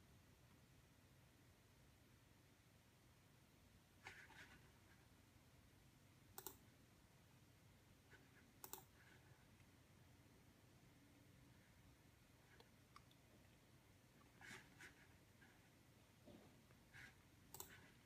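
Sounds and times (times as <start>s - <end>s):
computer mouse clicks: 6.4s - 6.7s, 8.6s - 9.2s, 17.5s - 18.0s.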